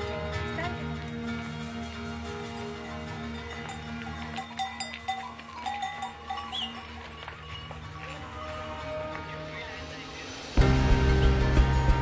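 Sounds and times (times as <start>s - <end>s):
mule bells clinking: 0.0s - 10.2s
hooves clicking on stone: 0.5s - 9.6s.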